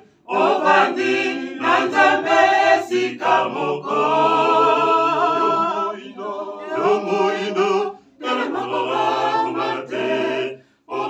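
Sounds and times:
mixed choir singing a cappella: 0:00.0 - 0:11.0.

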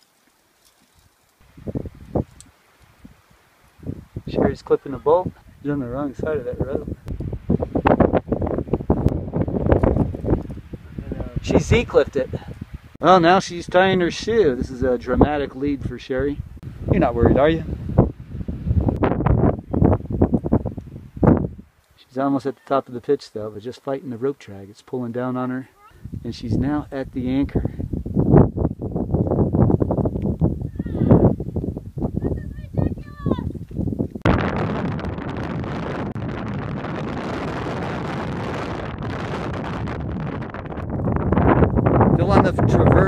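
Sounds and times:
wind buffeting microphone: 0:01.4 - 0:21.8, 0:25.9 - 0:43.0.

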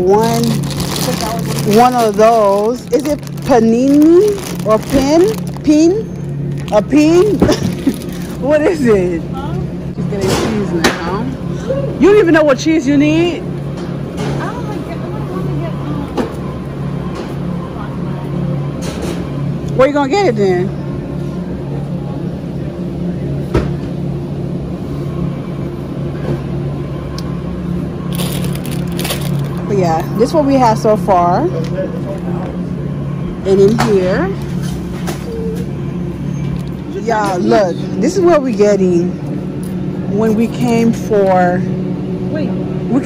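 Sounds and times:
refrigerator hum: 0:00.0 - 0:43.0.

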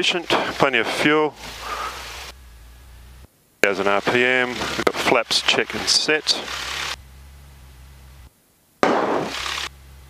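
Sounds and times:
burst of static hiss: 0:00.0 - 0:09.8
faint engine hum: 0:00.0 - 0:10.0.

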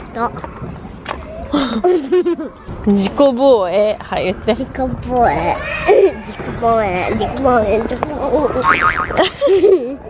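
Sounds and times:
young children talking: 0:04.7 - 0:08.7.

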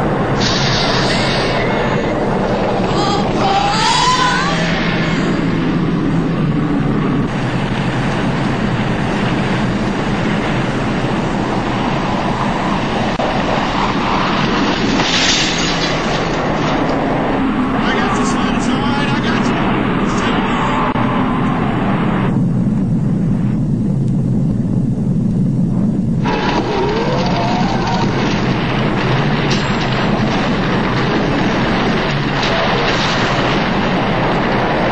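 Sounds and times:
explosion rumble and rush: 0:00.0 - 0:34.9.

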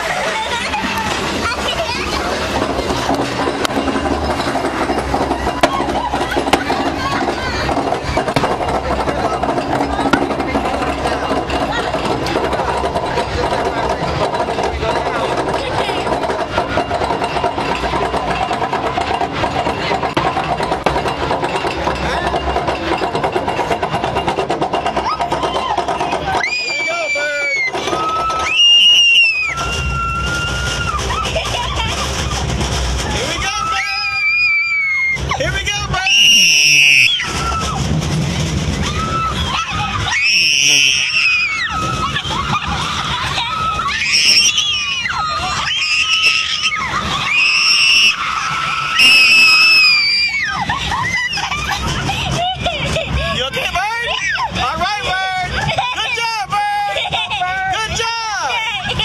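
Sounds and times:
roller coaster rattling on track: 0:00.0 - 0:59.0.

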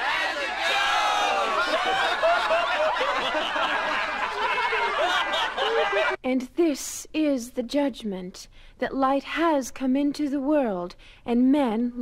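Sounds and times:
group of people laughing: 0:00.0 - 0:06.2.

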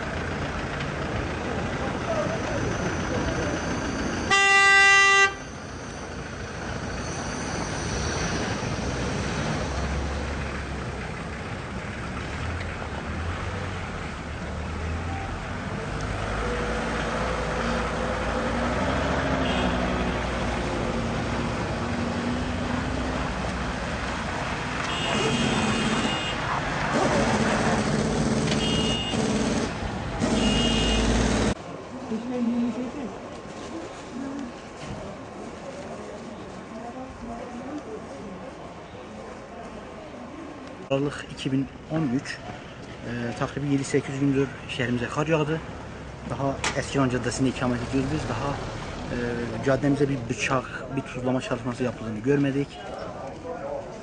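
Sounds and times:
traffic rumbling through slush: 0:00.0 - 0:54.0
vehicle horn blast: 0:04.3 - 0:05.5, 0:19.4 - 0:20.0, 0:24.8 - 0:26.4, 0:28.6 - 0:29.2, 0:30.3 - 0:31.2.

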